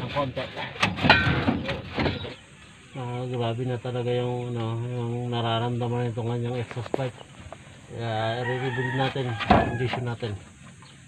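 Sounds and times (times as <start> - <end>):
exhaust pipe clanking: 0.0 - 2.4.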